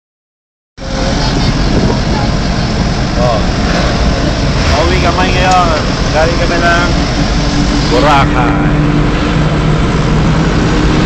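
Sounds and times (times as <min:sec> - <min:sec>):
faint passenger voices: 0:00.8 - 0:08.8
vehicle interior engine noise: 0:00.8 - 0:11.0.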